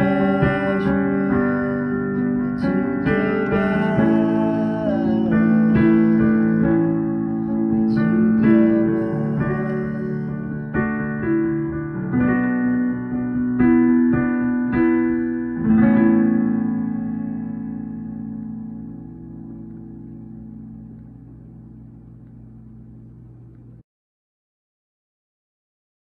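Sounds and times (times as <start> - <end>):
digital piano chords: 0.0 - 23.8.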